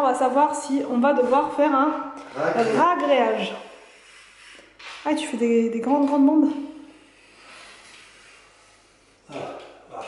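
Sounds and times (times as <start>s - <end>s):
knife blade scraping vinyl: 3.7s - 9.0s.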